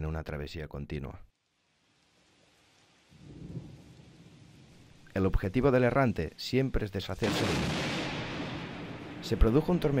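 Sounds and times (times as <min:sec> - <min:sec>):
rain-like hiss: 0:00.0 - 0:10.0
low rumble of thunder: 0:03.2 - 0:05.0, 0:07.2 - 0:10.0.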